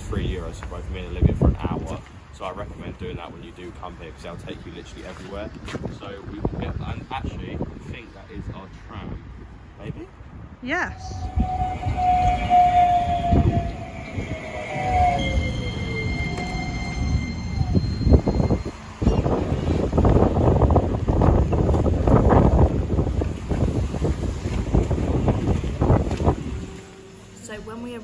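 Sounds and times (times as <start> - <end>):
tram motor whine: 10.9 - 28.0
wheel squeal: 11.2 - 20.2.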